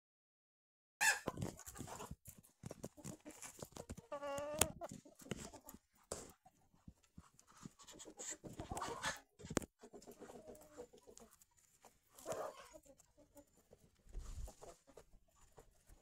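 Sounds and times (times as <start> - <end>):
chickens pecking and scratching: 1.0 - 16.0.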